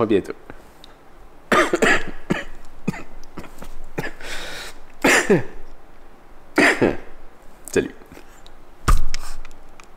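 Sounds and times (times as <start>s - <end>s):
man coughing: 1.5s - 4.4s, 5.0s - 5.6s, 6.6s - 7.2s.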